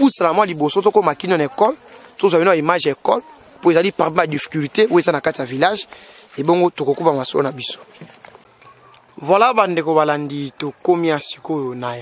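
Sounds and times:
man talking: 0:00.0 - 0:08.0, 0:09.2 - 0:12.0
cricket trilling: 0:00.0 - 0:09.5.

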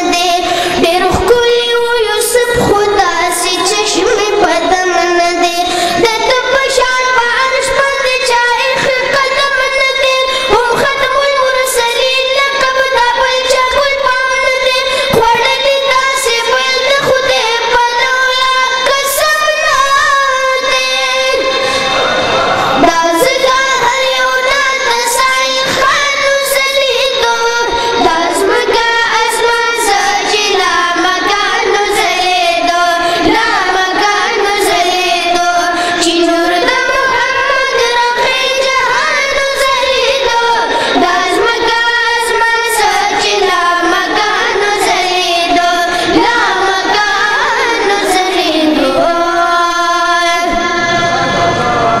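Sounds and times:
person singing in high voice: 0:00.0 - 0:52.0.

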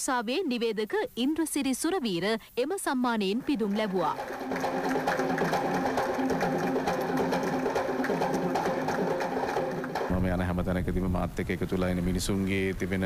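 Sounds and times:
audience applauding: 0:03.3 - 0:10.3
music playing: 0:03.4 - 0:10.7.

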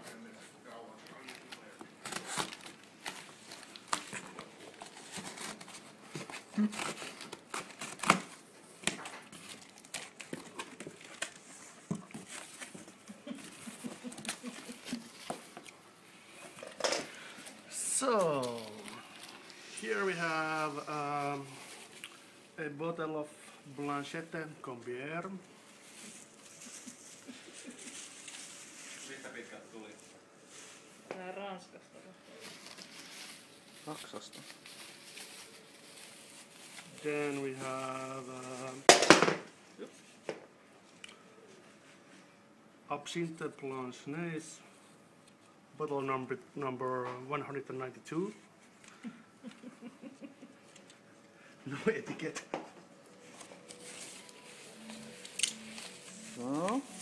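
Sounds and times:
bubble wrap crinkling: 0:00.4 - 0:15.8, 0:17.2 - 0:22.6, 0:23.9 - 0:31.3, 0:32.3 - 0:42.0, 0:51.8 - 0:57.0
packing tape tearing: 0:01.1 - 0:12.9, 0:53.1 - 0:57.0
low hiss: 0:14.4 - 0:27.0, 0:32.4 - 0:40.0.

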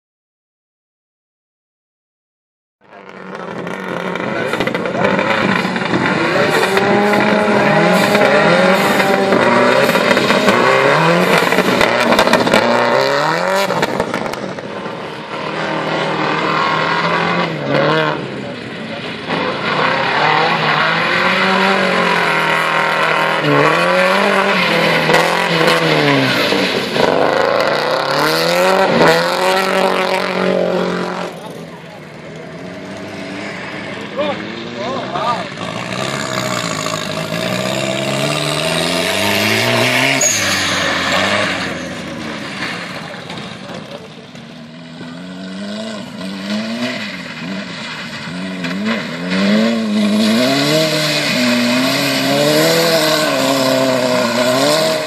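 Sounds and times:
racing buggy engine revving: 0:02.8 - 0:55.0
rally car engine revving: 0:02.8 - 0:55.0.

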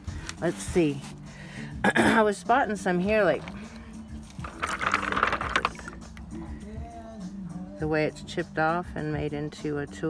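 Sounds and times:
stones clattering: 0:04.2 - 0:06.2.

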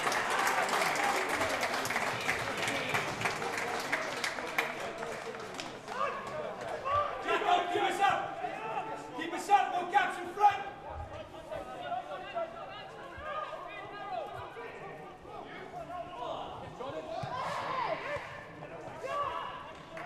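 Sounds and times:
footballers shouting: 0:05.9 - 0:20.0.

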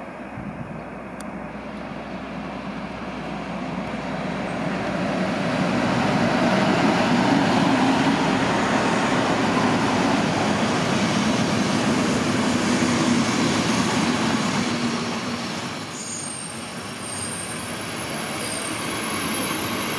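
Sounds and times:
diesel locomotive engine hum: 0:00.0 - 0:19.9
coaches rolling on rails: 0:01.3 - 0:19.9
high wheel squeal: 0:14.1 - 0:19.9.

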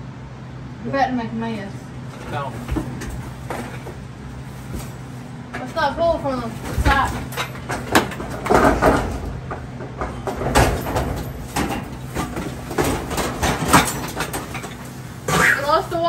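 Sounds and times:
wire cart clattering: 0:06.4 - 0:16.0.

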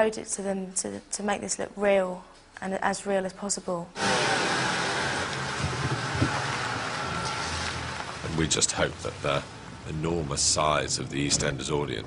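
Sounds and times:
low engine hum: 0:04.0 - 0:10.8
rain rushing on moving car: 0:04.0 - 0:11.0
road noise: 0:04.0 - 0:12.0.

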